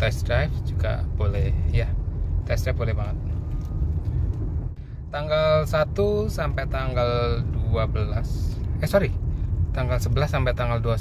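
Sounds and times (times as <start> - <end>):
engine and road noise in cabin: 0.0 - 11.0.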